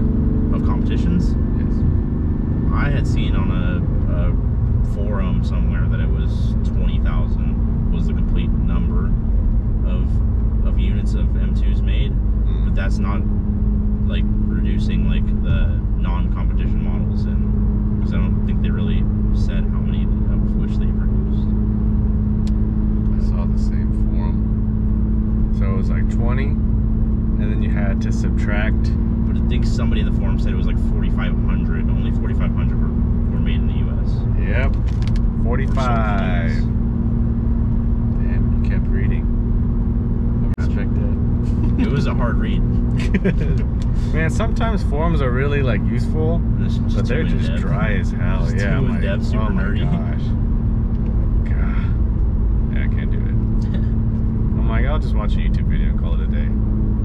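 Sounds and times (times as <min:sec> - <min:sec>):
car engine drone: 0:00.0 - 0:57.0
road noise: 0:00.0 - 0:57.0
people talking: 0:00.5 - 0:01.8, 0:02.7 - 0:09.2, 0:09.9 - 0:13.3, 0:14.1 - 0:21.5, 0:23.1 - 0:24.4, 0:25.6 - 0:26.6, 0:27.4 - 0:36.7, 0:38.2 - 0:39.3, 0:40.4 - 0:50.4, 0:51.4 - 0:52.0, 0:52.7 - 0:56.6.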